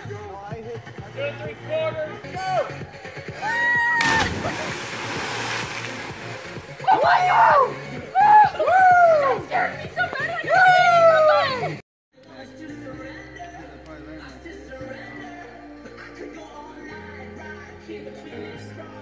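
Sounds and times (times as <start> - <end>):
bodies splashing into water: 3.9 - 7.0.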